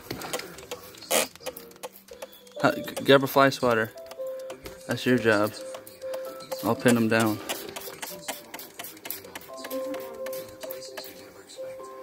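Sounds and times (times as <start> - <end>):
spray bottle trigger clicks: 6.1 - 11.1
spray hiss: 6.6 - 10.7.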